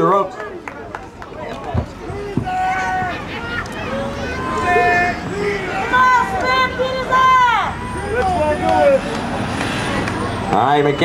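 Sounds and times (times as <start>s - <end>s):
high-pitched shouting voices: 2.2s - 8.4s.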